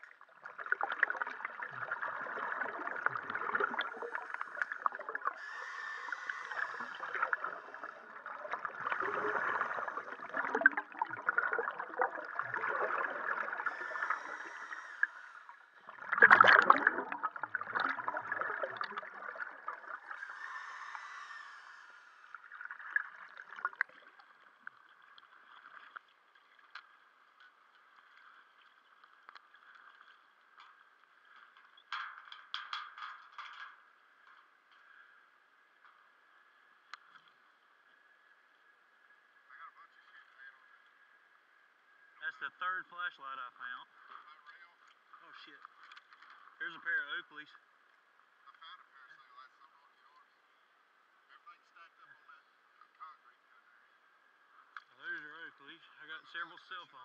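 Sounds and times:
faint steady hiss: 0.0s - 16.2s, 17.0s - 31.4s
regulator bubbles gurgling underwater: 0.0s - 26.1s.

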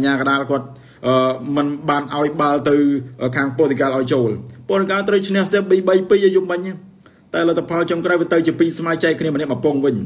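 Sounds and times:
man talking: 0.0s - 10.0s.

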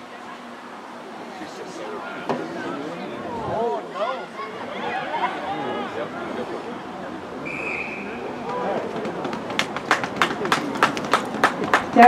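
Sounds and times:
crowd voices: 0.0s - 12.0s
whistle blast: 7.4s - 8.4s
spectators clapping in rhythm: 9.0s - 12.0s.

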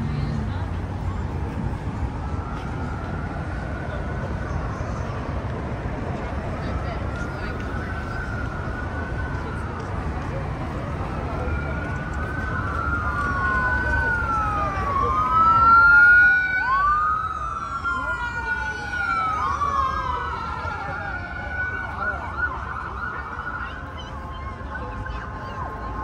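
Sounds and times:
emergency vehicle siren wailing: 0.0s - 26.0s
street traffic: 0.0s - 26.0s.

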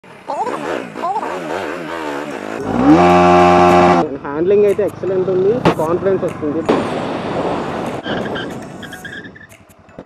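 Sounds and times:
motorcycle engine revving: 0.0s - 4.4s.

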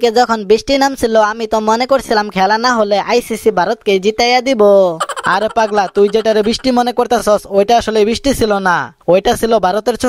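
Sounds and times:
squawky voice sounds: 4.9s - 7.1s
drawn-out vocal sound: 5.0s - 6.9s.

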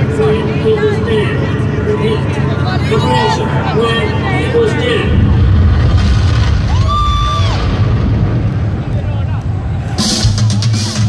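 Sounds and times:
crowd cheering and shouting: 0.0s - 11.0s
deep rumble: 0.0s - 11.0s.

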